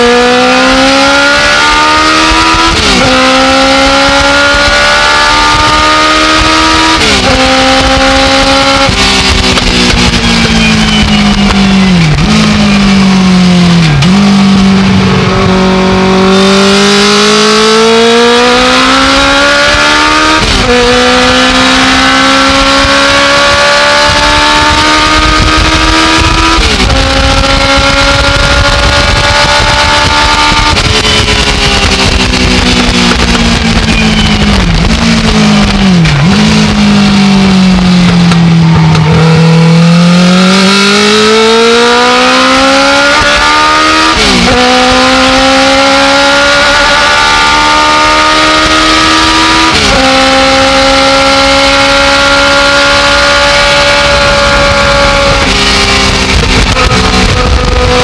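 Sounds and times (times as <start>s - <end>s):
race car engine revving: 0.0s - 58.0s.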